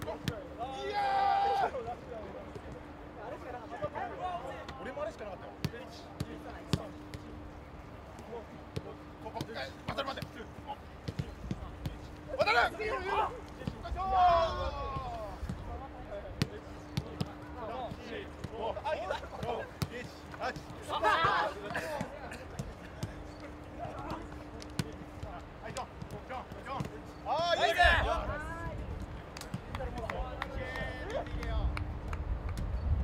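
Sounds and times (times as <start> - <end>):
players shouting: 0.0 - 7.4, 8.2 - 29.0
footballs being kicked: 8.1 - 12.3.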